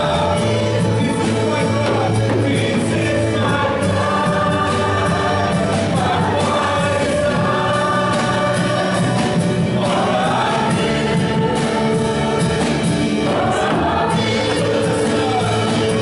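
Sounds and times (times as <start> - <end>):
group of singers: 0.0 - 16.0
worship band playing: 0.0 - 16.0.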